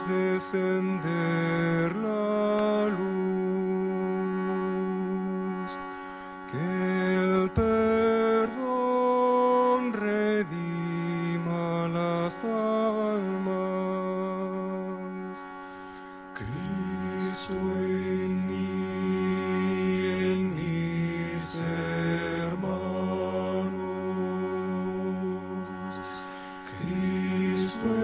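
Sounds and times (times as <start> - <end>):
steady low drone: 0.0 - 28.0
men chanting in unison: 16.4 - 28.0.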